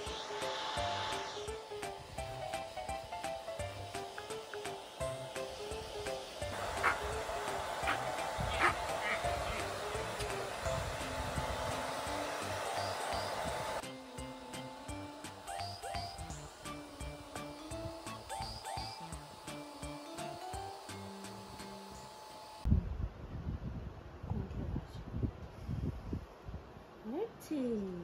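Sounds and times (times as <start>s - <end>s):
hair dryer blowing: 0.0s - 22.7s
background music with steady beat: 9.7s - 22.2s.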